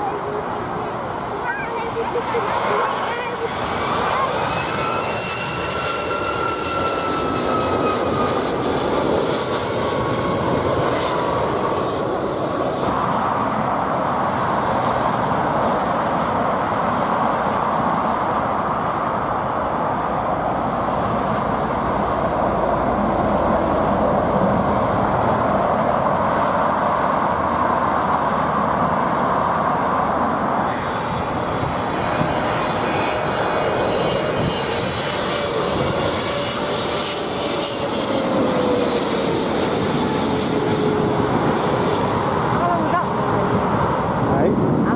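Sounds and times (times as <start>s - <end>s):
jet airliner engines passing overhead: 0.0s - 44.9s.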